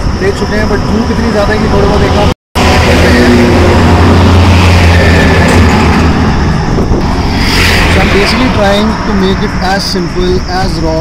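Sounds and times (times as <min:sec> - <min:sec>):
vehicle engine rumble passing: 0:00.0 - 0:11.0.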